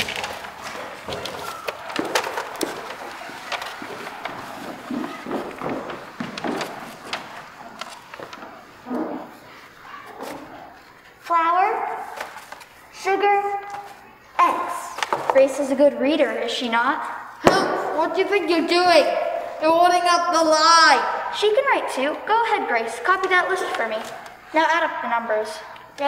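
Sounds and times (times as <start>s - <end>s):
footsteps on wooden stage floor: 0.0s - 9.5s.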